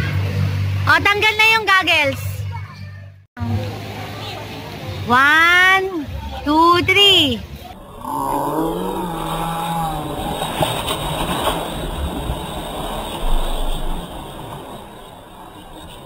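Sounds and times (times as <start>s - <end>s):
splash and churning water: 8.7s - 16.0s.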